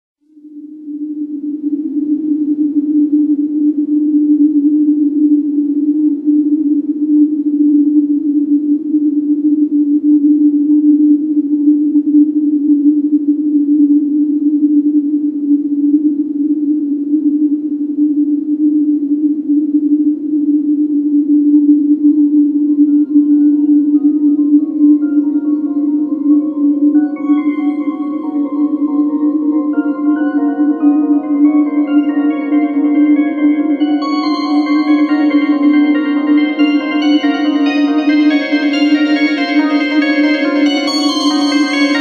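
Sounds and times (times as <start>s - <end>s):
low electronic drone: 0.8s - 42.0s.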